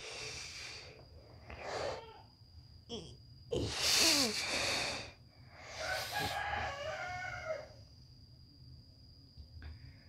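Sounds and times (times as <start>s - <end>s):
rooster crowing: 5.7s - 7.9s.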